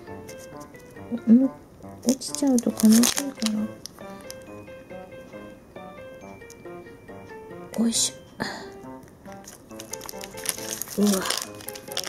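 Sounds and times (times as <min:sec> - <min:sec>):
plastic piping bag crinkling: 0:01.8 - 0:04.6, 0:09.3 - 0:12.0.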